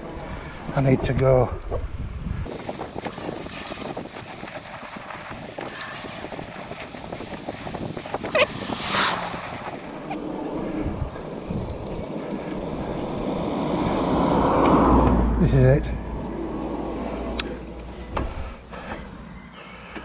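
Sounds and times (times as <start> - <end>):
vehicle passing by: 8.4 - 18.6.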